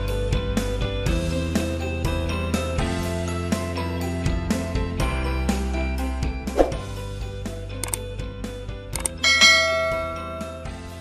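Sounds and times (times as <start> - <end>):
background music: 0.0 - 11.0
bright bell chime: 9.2 - 10.7.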